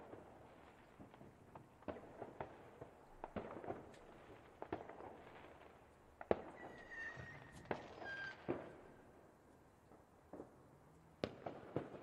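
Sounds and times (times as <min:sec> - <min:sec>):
fireworks bangs: 0:06.3 - 0:08.8
firework whistles: 0:06.5 - 0:08.7.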